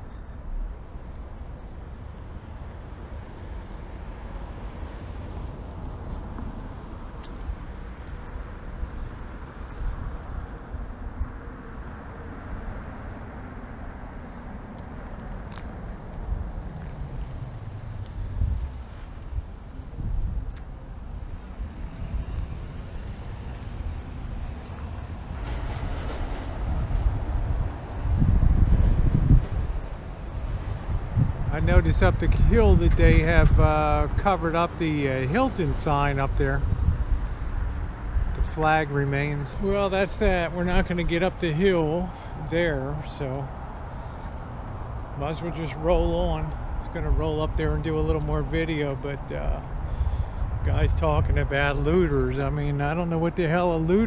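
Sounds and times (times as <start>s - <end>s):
road traffic rumble: 0.0s - 54.0s.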